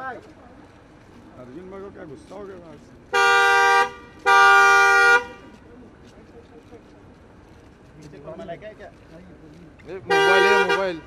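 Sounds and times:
car horn blast: 3.1 - 5.4, 10.1 - 11.0.

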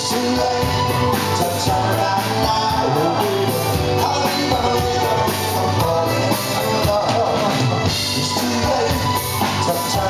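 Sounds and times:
drum kit: 0.0 - 10.0
electric guitar: 0.0 - 10.0
live band playing: 0.0 - 10.0.

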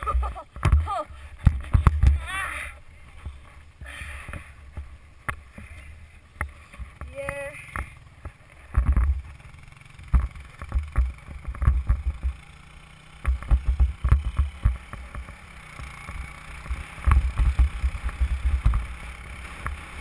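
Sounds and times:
knocks and bumps over snow: 0.0 - 12.5, 13.1 - 20.0
faint atv engine: 0.0 - 20.0.

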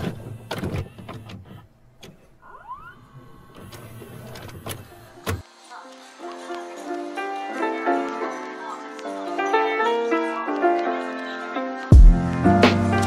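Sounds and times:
mechanical clicks and clunks: 0.0 - 2.4, 3.5 - 5.5
music with plucked notes: 6.6 - 13.0.

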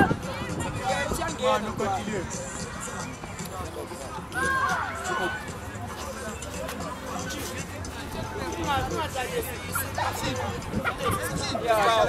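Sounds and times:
background chatter of voices: 0.0 - 12.0.

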